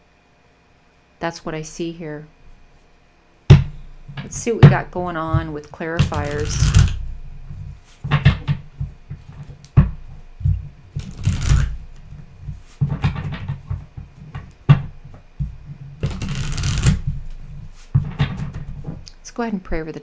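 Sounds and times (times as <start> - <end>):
cards shuffling: 5.3 - 9.8, 10.5 - 19.0.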